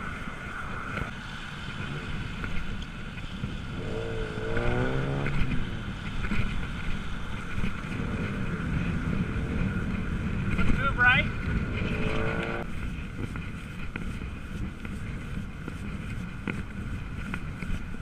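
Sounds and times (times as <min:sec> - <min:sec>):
tyres on wet street: 0:00.0 - 0:18.0
wind rushing over microphone: 0:00.0 - 0:18.0.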